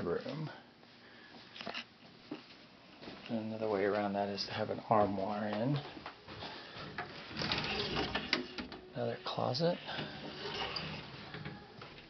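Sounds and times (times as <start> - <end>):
wooden door sliding open: 6.8 - 8.9, 9.8 - 11.8.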